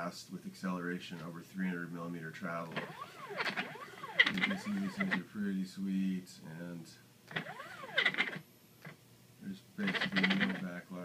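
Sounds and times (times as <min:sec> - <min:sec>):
clicking rattle: 0:02.7 - 0:05.2, 0:07.3 - 0:09.0, 0:09.9 - 0:10.6
stepper motor whine: 0:02.7 - 0:05.2, 0:07.3 - 0:08.4.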